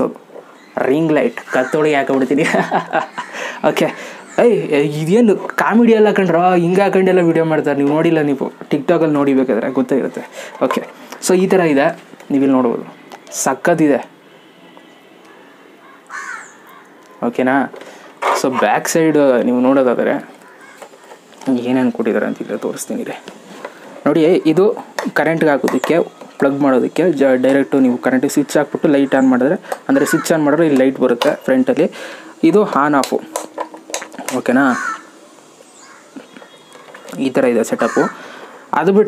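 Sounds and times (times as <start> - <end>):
crow cawing: 1.4 - 4.6, 14.3 - 17.2, 20.3 - 21.4, 29.6 - 30.6, 34.6 - 38.7.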